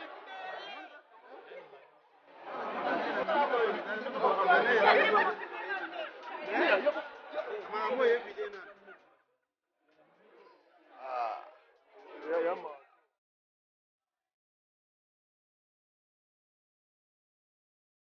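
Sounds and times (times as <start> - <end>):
crowd chatter: 0.0 - 13.2.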